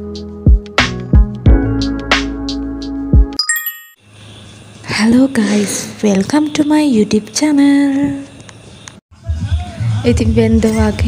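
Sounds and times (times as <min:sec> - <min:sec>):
intro music with a beat: 0:00.0 - 0:03.4
bright bell-like chime: 0:03.4 - 0:04.0.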